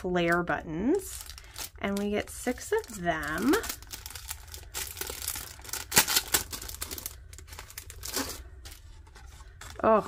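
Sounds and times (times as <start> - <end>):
plastic packaging crinkling: 0.2 - 10.0.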